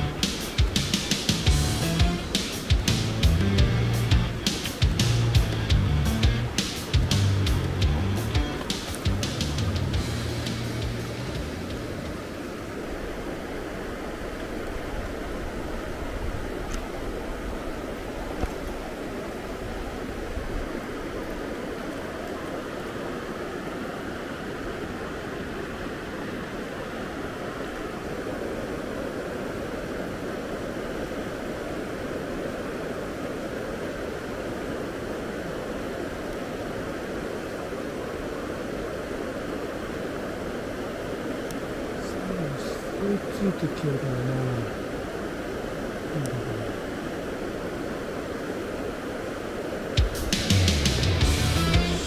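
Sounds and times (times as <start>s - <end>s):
stream running over stones: 0.0s - 50.4s.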